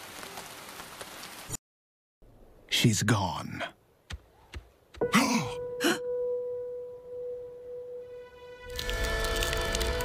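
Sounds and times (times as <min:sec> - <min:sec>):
sustained music tone: 0:05.0 - 0:10.0
breathy cartoon vocal sounds: 0:05.1 - 0:06.1.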